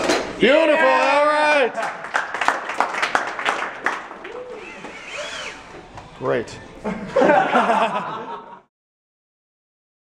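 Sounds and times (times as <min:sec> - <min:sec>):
small electric motors whining: 0:04.4 - 0:05.9.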